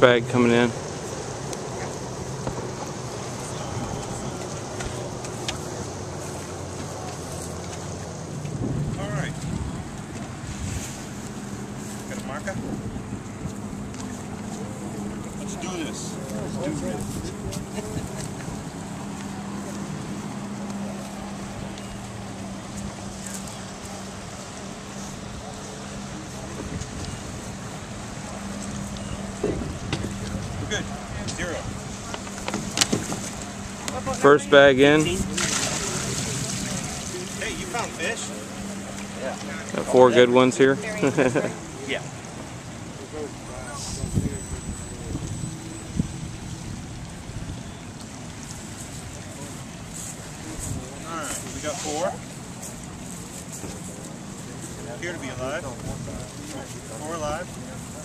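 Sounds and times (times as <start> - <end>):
outboard motor idling: 0.0 - 58.0
wind on microphone: 0.7 - 15.4, 25.2 - 34.1, 43.7 - 49.4.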